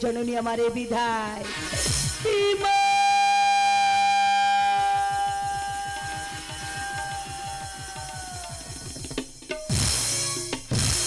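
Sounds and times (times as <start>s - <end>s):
fast low drum beat: 3.8s - 11.0s.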